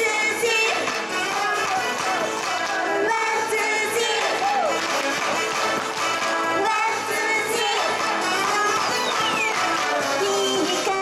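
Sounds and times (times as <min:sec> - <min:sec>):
pop backing track over loudspeaker: 0:00.0 - 0:11.0.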